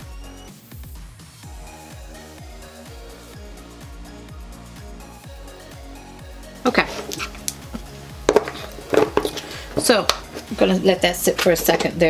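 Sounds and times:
knocks of small objects handled: 0:06.9 - 0:10.6.

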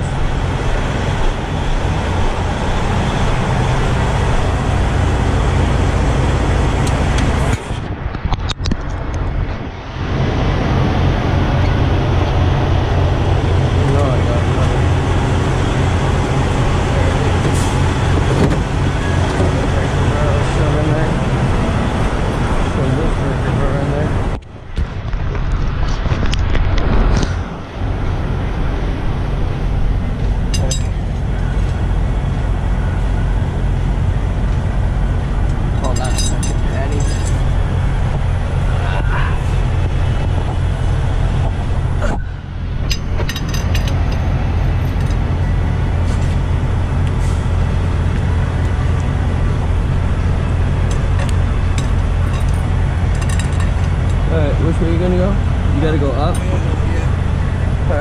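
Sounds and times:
truck diesel engine idling: 0:00.0 - 0:07.9, 0:09.8 - 0:24.4, 0:27.5 - 0:58.0.

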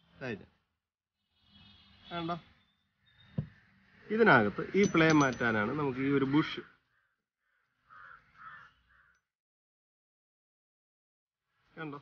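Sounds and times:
crow cawing: 0:06.6 - 0:09.3.

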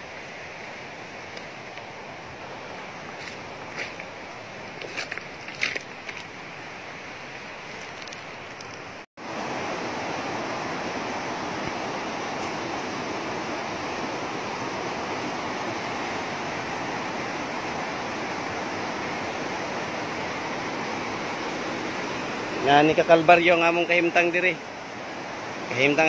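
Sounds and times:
river water rushing over rocks: 0:00.0 - 0:26.0.

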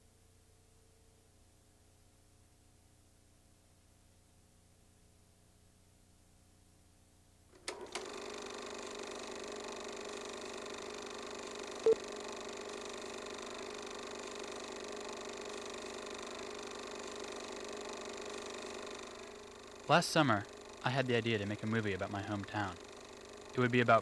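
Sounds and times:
film projector whirring: 0:07.5 - 0:24.0.

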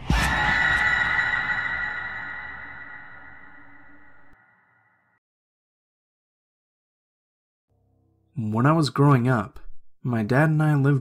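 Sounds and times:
horror music sting: 0:00.0 - 0:04.8.

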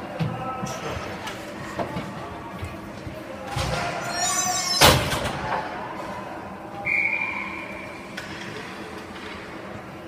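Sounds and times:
referee whistle blast: 0:06.8 - 0:07.8.

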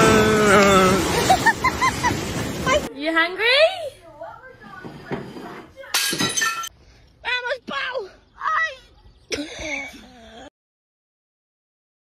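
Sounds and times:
person's strained throaty vocal sound: 0:00.0 - 0:01.1.

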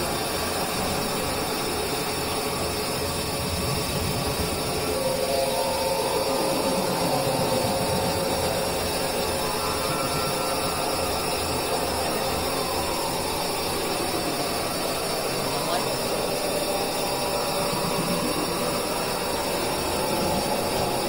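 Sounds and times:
noisy experimental drone music: 0:00.0 - 0:21.0.

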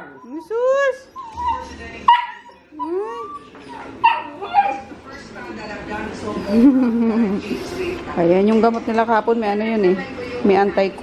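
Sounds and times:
puppies whining and yipping: 0:00.0 - 0:05.3.

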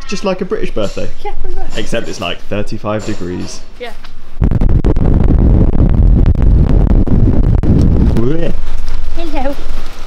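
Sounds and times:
wind buffeting microphone: 0:04.1 - 0:10.0.

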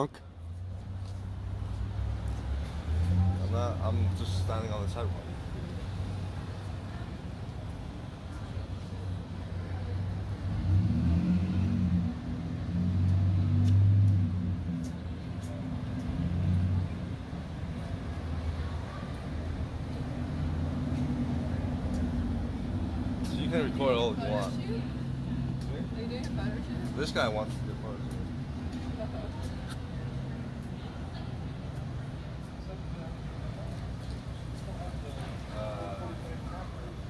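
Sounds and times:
low traffic hum: 0:00.0 - 0:37.0
vehicles passing: 0:00.0 - 0:37.0
car engines running: 0:00.5 - 0:37.0.

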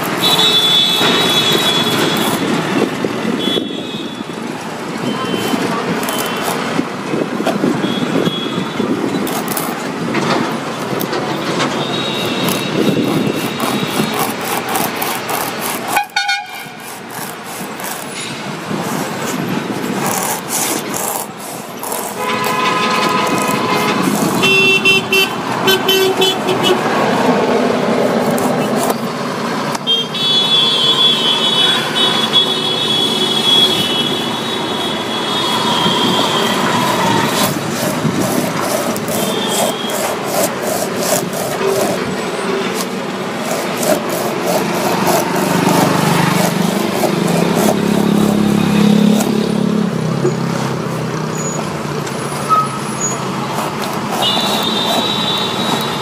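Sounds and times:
knife scraping rubber: 0:00.0 - 0:03.6, 0:05.2 - 0:29.8, 0:32.1 - 0:49.8, 0:52.2 - 0:56.0
road traffic: 0:00.0 - 0:56.0
vehicle horns honking: 0:00.1 - 0:02.6, 0:03.3 - 0:06.8, 0:07.7 - 0:09.0, 0:11.4 - 0:14.4, 0:15.9 - 0:17.0, 0:22.0 - 0:27.3, 0:29.7 - 0:43.1, 0:52.3 - 0:56.0.

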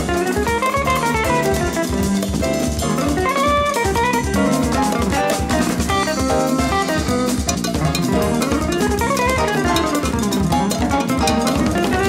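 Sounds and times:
jazz group playing: 0:00.0 - 0:12.0
quick guitar notes: 0:00.0 - 0:12.0.

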